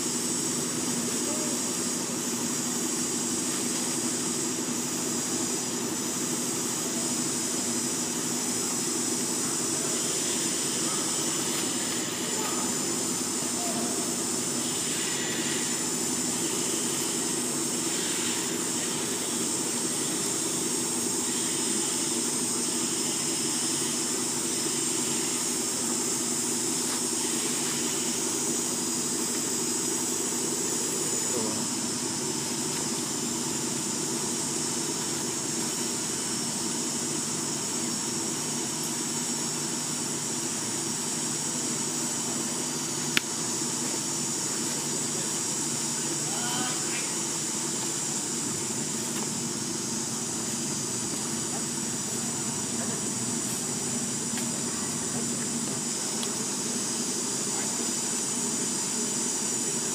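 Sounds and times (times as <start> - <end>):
high-pitched hiss: 0.0 - 59.9.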